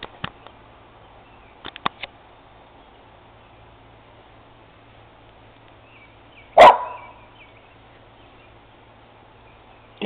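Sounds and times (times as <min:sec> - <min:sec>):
dog barking: 0:06.6 - 0:07.2.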